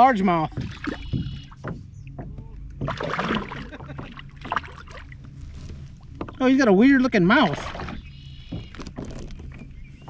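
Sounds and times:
steady low hum: 0.0s - 10.0s
water splashing by a kayak: 0.0s - 10.0s.

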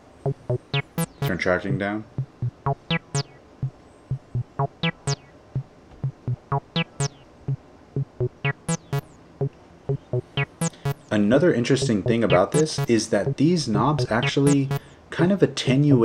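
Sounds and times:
acid synth bassline: 0.3s - 1.4s, 2.2s - 3.4s, 4.1s - 5.3s, 6.0s - 7.2s, 8.0s - 9.2s, 9.9s - 11.1s, 11.8s - 14.8s.

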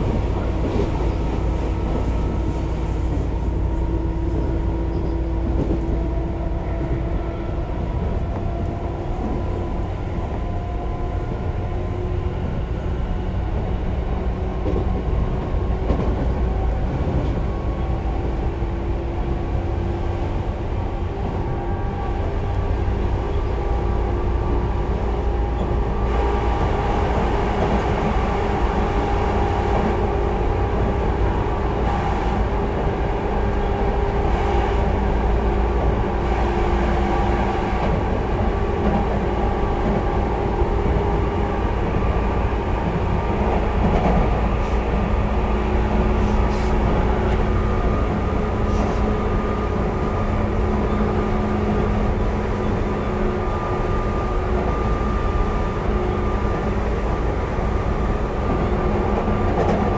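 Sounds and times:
wheels rumbling on rail: 0.0s - 59.9s.

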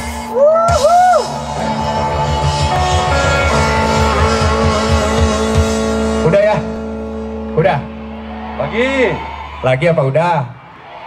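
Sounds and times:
rock band playing: 0.0s - 10.2s
ringing guitar chord: 1.3s - 8.7s.

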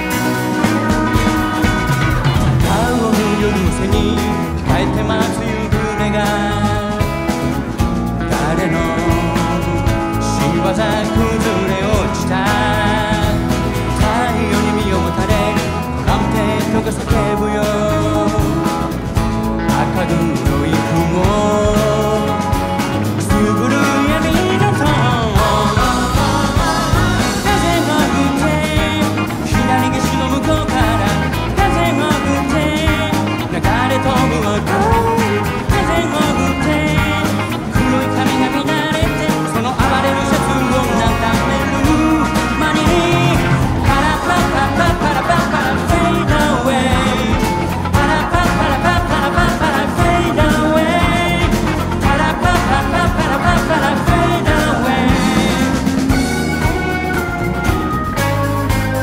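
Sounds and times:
man singing: 0.0s - 56.9s
drums: 0.0s - 59.0s
pop rock band playing: 0.0s - 59.0s.

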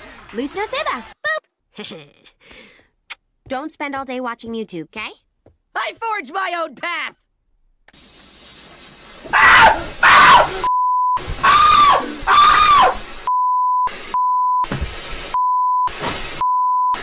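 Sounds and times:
man screaming: 9.3s - 10.7s, 11.4s - 13.0s
high censor bleeps: 13.3s - 14.7s, 15.4s - 17.0s.

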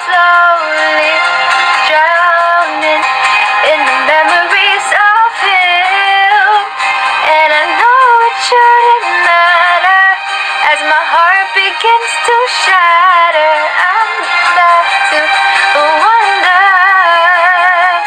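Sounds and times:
woman singing a ballad: 0.0s - 18.0s.

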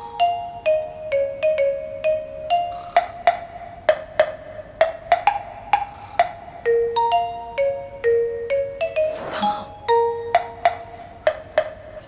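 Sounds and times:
light background music: 0.0s - 12.0s
sharp percussive taps: 3.0s - 6.4s, 10.4s - 11.8s.

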